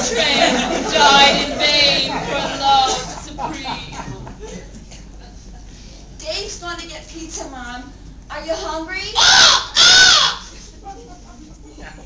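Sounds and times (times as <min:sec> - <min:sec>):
woman imitating bird squawk: 0:09.2 - 0:10.5.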